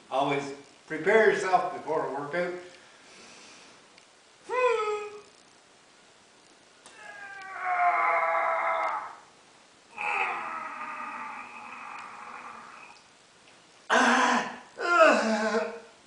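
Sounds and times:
man straining sounds: 0:04.4 - 0:05.3, 0:06.9 - 0:09.3, 0:09.9 - 0:13.1, 0:13.9 - 0:16.0.

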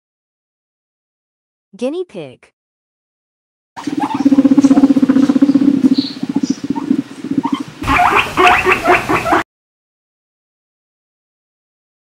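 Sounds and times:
guinea pig rumbling: 0:03.8 - 0:09.4
guinea pig squeaks: 0:03.8 - 0:09.4.

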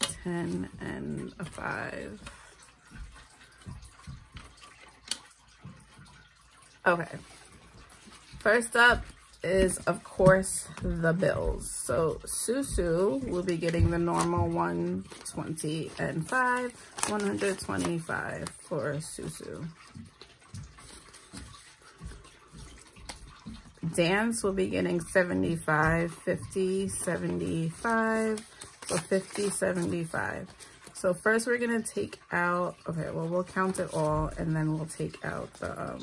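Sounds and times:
banknotes rustling: 0:12.4 - 0:19.4, 0:25.1 - 0:31.2, 0:33.3 - 0:36.0.

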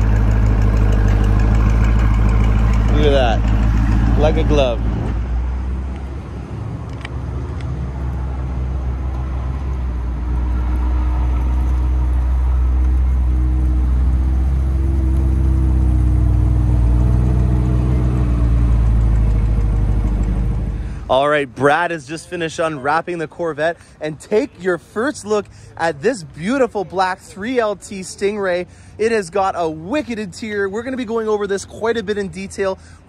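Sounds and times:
car engine running: 0:00.0 - 0:06.2, 0:08.7 - 0:21.1.

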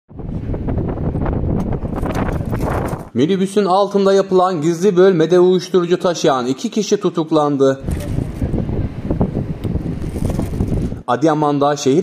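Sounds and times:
wind buffeting microphone: 0:00.1 - 0:03.2, 0:07.8 - 0:11.1.

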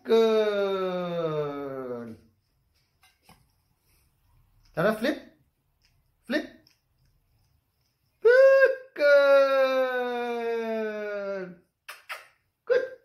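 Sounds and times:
brief vocal call: 0:08.2 - 0:09.8.

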